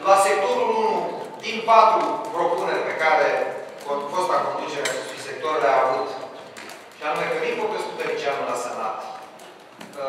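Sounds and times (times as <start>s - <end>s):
person talking: 0.0s - 6.4s, 7.0s - 9.3s.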